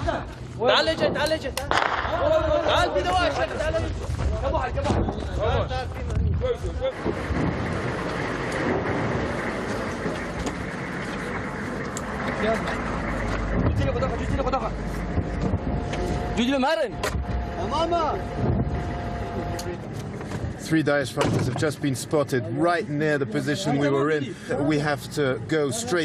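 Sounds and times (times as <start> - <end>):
person laughing: 0.0 - 0.4
vehicle engine rumble: 0.0 - 26.0.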